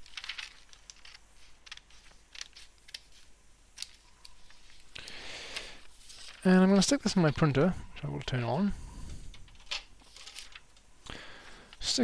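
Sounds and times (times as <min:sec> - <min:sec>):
paper rustling: 0:00.0 - 0:08.6, 0:09.3 - 0:10.8.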